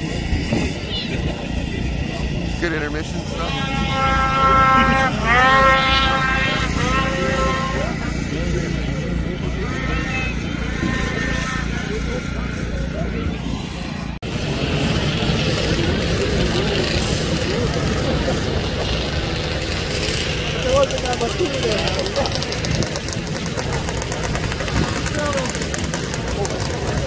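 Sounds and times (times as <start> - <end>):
crowd talking indistinctly: 0.0 - 27.0
snowmobile engines running: 0.0 - 27.0.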